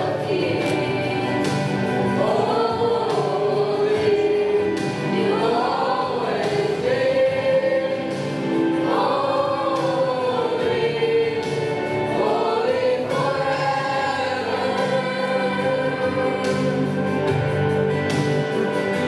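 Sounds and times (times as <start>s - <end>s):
choir singing a hymn: 0.0s - 19.0s.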